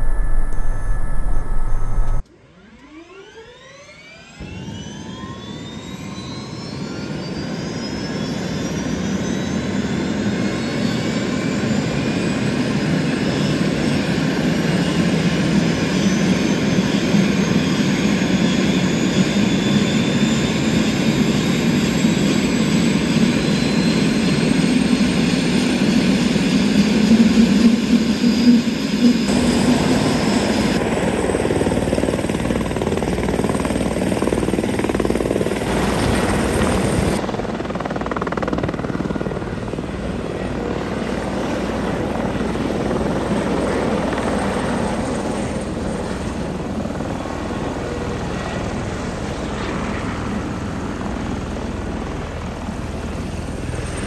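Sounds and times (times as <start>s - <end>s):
helicopter engine and rotors: 0.0s - 54.0s.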